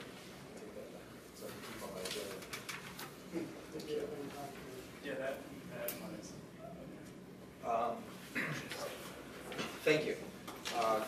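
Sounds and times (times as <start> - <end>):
papers rustling: 1.4 - 3.2, 8.7 - 11.0.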